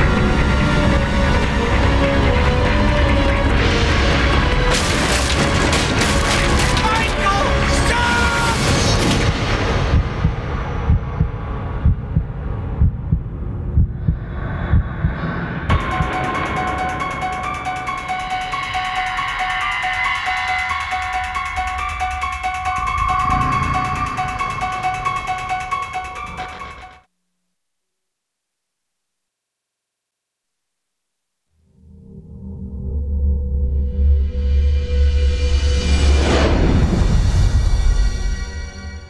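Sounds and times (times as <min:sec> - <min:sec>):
deep pounding hits: 0:08.6 - 0:18.8
high theme of rapid notes: 0:15.7 - 0:27.1.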